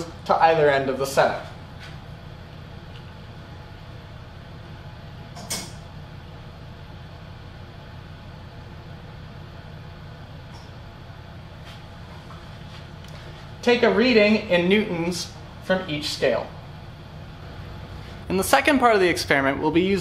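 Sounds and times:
ventilation hum: 0:00.0 - 0:20.0.

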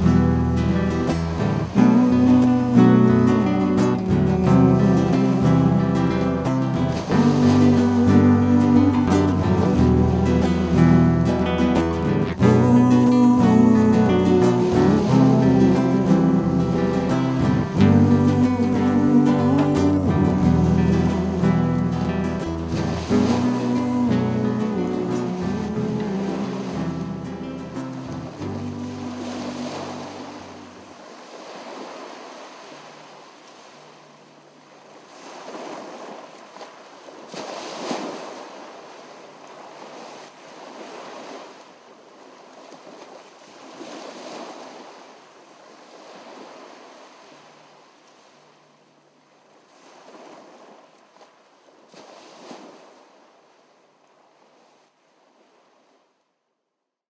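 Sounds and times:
music: 0:00.0 - 0:30.8
ocean waves washing: 0:00.0 - 0:56.0.

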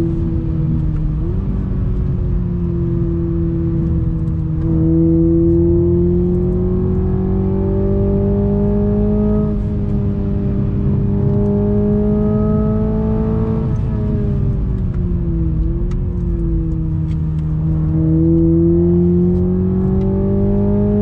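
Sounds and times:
car engine accelerating: 0:00.0 - 0:21.0.

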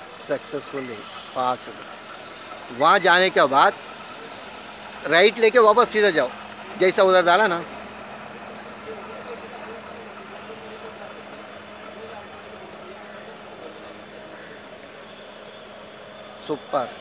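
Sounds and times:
car engine driving away: 0:00.0 - 0:17.0.

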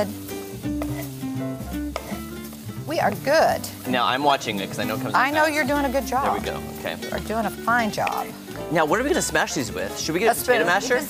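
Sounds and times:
background music with held notes: 0:00.0 - 0:11.0
vegetables sizzling in a frying pan: 0:00.0 - 0:11.0.

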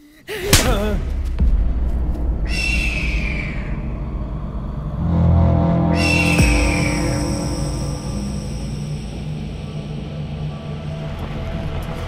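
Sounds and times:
low drone: 0:01.3 - 0:12.0
high ringing sting: 0:04.4 - 0:11.2.

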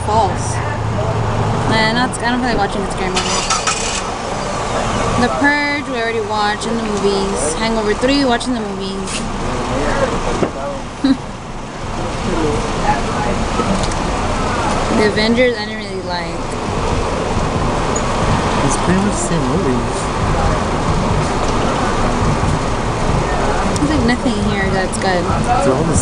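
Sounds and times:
outdoor background noise: 0:00.0 - 0:26.0
quiet mumbled talking: 0:03.9 - 0:26.0.

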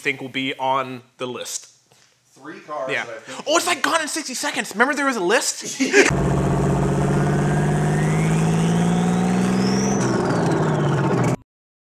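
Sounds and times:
engine-like drone with rising whistle: 0:06.1 - 0:11.4.

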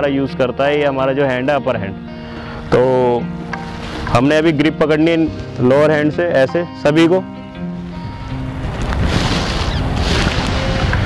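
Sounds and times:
wind buffeting microphone: 0:07.6 - 0:11.0.

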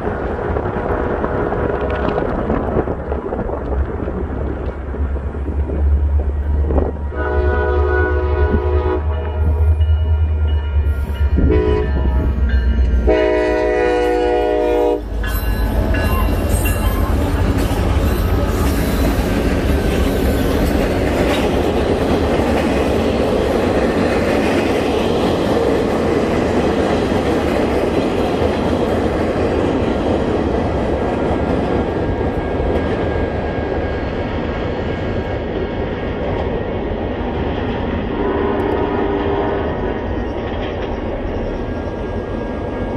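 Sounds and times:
freight cars rolling on rails: 0:00.0 - 0:07.4, 0:08.3 - 0:42.9
locomotive engine rumble: 0:00.0 - 0:24.2
locomotive horn blasts: 0:07.1 - 0:15.1, 0:38.1 - 0:40.0.

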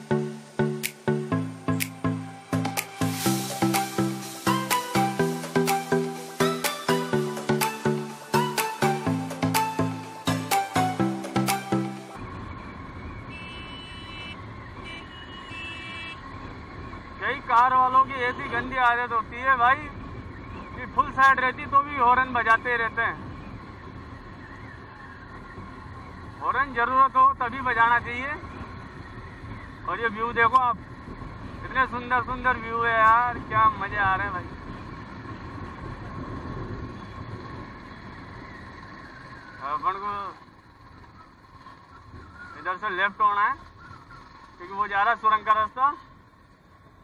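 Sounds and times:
motorcycle riding noise: 0:00.0 - 0:47.0
wind and road noise: 0:00.0 - 0:47.0
car horn beeping: 0:13.3 - 0:16.2.

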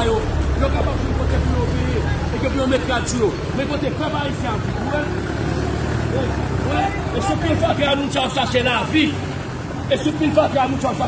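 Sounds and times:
man speaking: 0:00.0 - 0:05.3, 0:06.0 - 0:11.0.

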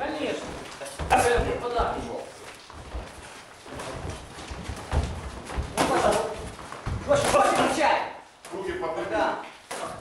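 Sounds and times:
footwork on ring floor: 0:00.0 - 0:08.6.

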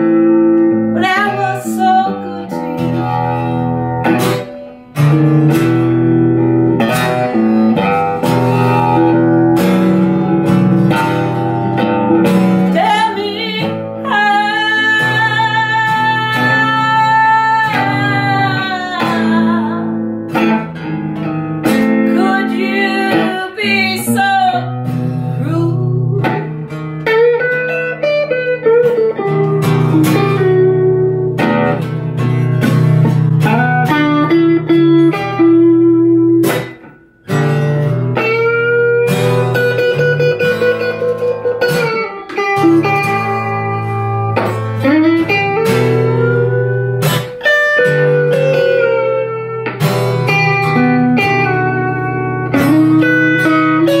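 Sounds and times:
acoustic guitar chords: 0:00.0 - 0:54.0
electric guitar lead line: 0:00.0 - 0:54.0.

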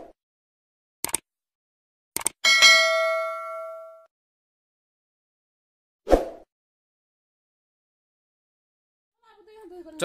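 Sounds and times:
notification bell ding: 0:02.4 - 0:04.1.

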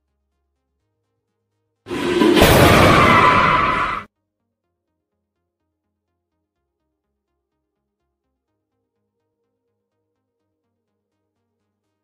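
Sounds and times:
noisy rush with high tone: 0:01.9 - 0:04.1.

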